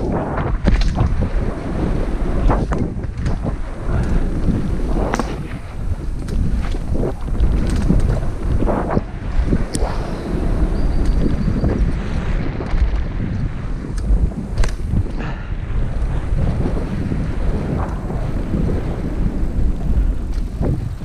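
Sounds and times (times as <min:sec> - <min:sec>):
bike knocks and rattles: 0:00.0 - 0:01.4, 0:02.4 - 0:08.6
knobby tyre rumble: 0:00.0 - 0:21.0
wind buffeting microphone: 0:00.0 - 0:21.0.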